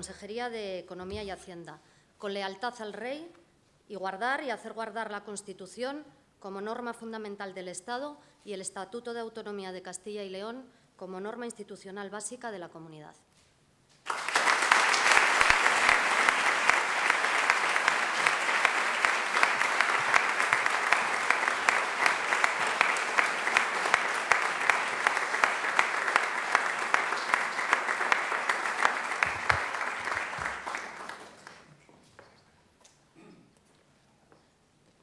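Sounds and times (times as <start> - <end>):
crowd applauding: 14.1 - 31.8.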